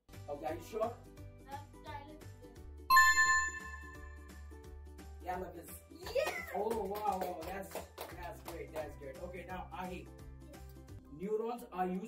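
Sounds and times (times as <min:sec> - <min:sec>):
background music: 0:00.1 - 0:12.0
quiz show bell chime: 0:02.9 - 0:04.4.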